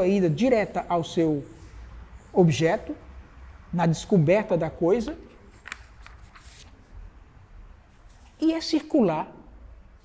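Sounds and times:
paper rustling: 0:05.3 - 0:07.0.

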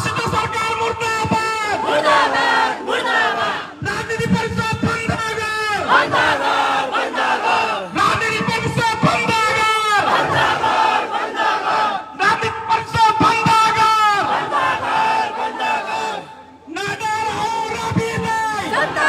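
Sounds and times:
crowd chanting slogans: 0:01.7 - 0:03.8, 0:05.8 - 0:08.0, 0:09.9 - 0:12.2, 0:14.1 - 0:16.6, 0:18.6 - 0:19.0.

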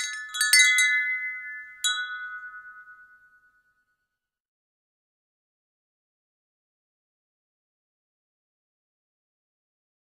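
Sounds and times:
metal chimes ringing: 0:00.0 - 0:03.9.

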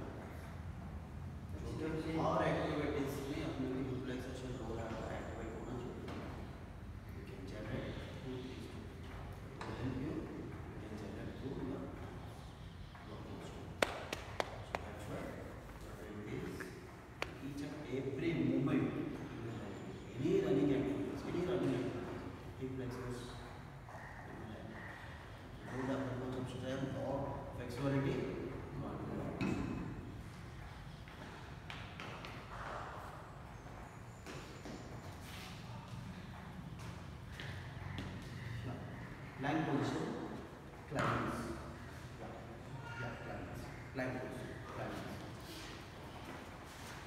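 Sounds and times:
low background murmur: 0:00.0 - 0:47.0.

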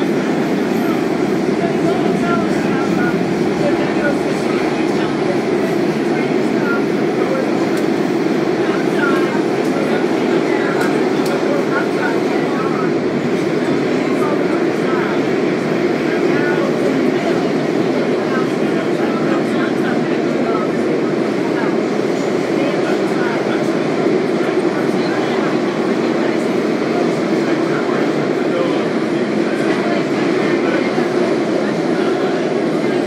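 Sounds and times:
metro train wheels rumbling on rails: 0:00.0 - 0:33.0.

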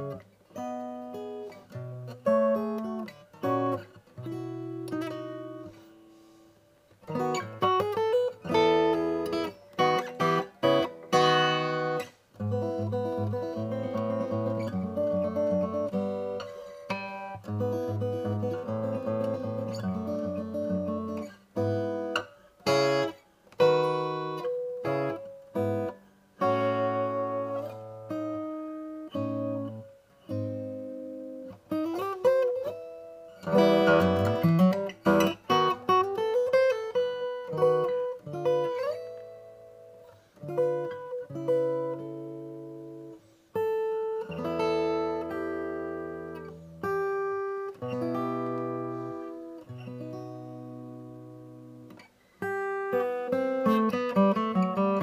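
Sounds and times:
fingerpicked acoustic guitar: 0:00.0 - 0:55.0.

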